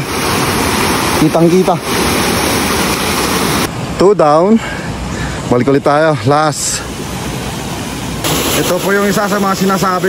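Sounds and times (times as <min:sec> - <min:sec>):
stream rushing over rocks: 0:00.0 - 0:04.0, 0:05.9 - 0:10.0.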